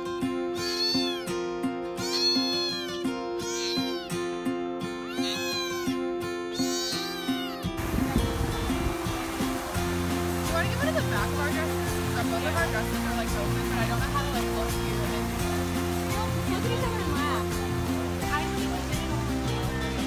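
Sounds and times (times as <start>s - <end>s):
kitten meowing: 0.6s - 1.4s, 2.0s - 4.1s, 5.0s - 7.8s.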